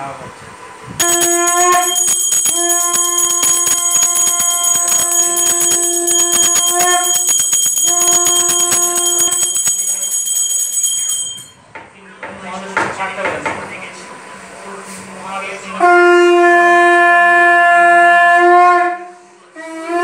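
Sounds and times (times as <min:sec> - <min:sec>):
brass hand bell ringing rapidly: 0:01.0 - 0:11.6.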